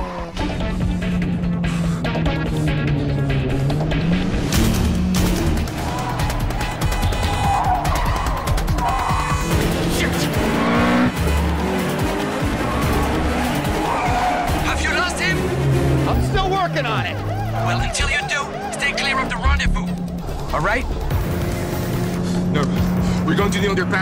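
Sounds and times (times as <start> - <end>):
car engines revving: 0.0 - 24.0
police siren wailing: 5.6 - 20.4
tyres squealing: 12.4 - 20.2.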